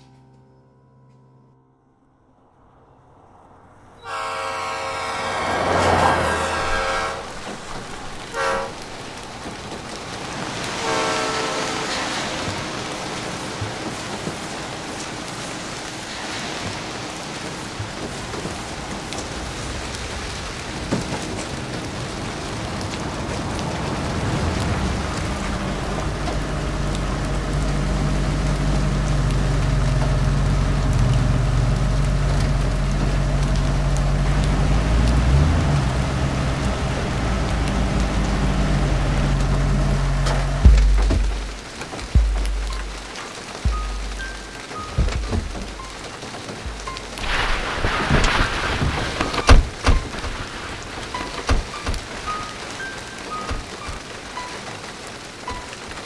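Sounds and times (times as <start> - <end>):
train horn: 3.9 - 9.4, 10.2 - 14.0
steady rain falling: 4.0 - 56.0
low steady drone: 23.9 - 47.6.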